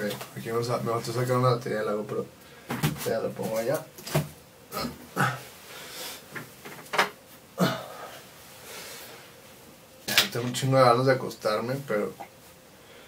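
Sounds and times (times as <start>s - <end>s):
breathing: 2.4s - 2.8s, 5.7s - 6.3s, 7.9s - 9.4s, 12.8s - 13.0s
person mumbling: 4.7s - 5.5s, 7.6s - 8.2s.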